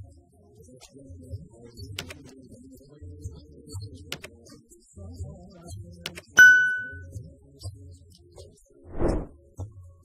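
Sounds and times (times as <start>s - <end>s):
soft mouse clicks: 1.9s - 2.4s, 4.1s - 4.5s, 6.1s - 6.4s
bright bell ding: 6.4s - 7.1s.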